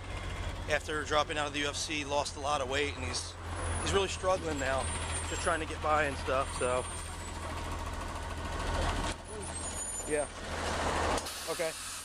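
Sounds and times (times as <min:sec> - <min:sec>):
street traffic rumble: 0:00.0 - 0:12.0.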